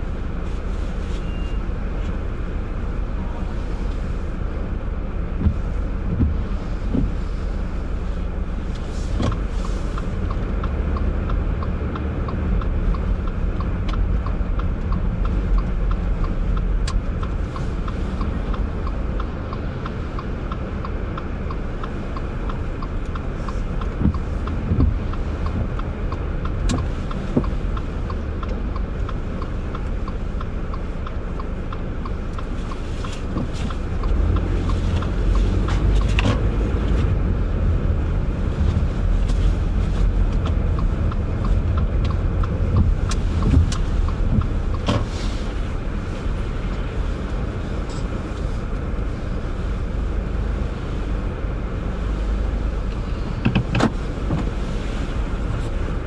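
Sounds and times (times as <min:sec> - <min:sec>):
car engine and road rumble: 0:00.0 - 0:56.0
faint regular ticking: 0:05.3 - 0:50.3.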